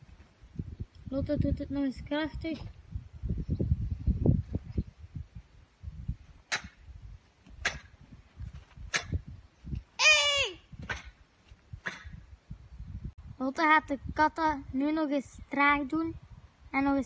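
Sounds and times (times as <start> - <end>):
girl shouting kiai: 10.0 - 10.7.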